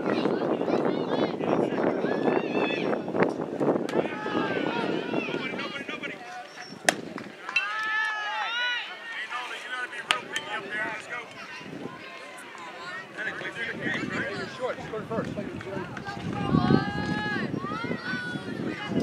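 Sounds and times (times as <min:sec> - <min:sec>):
high-pitched shouts and yelling: 0:00.0 - 0:03.0, 0:03.9 - 0:06.2, 0:16.0 - 0:19.0
spectators chattering: 0:00.0 - 0:19.0
baseball bat crack: 0:06.6 - 0:07.9.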